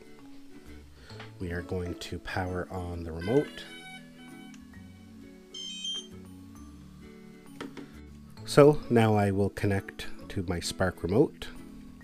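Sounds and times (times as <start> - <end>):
background music: 0.0 - 12.0
high-pitched electronic beep: 5.6 - 6.1.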